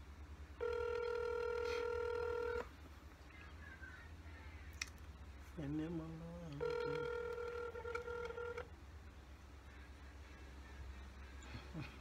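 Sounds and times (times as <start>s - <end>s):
phone ringback tone: 0.6s - 2.7s, 6.6s - 8.7s.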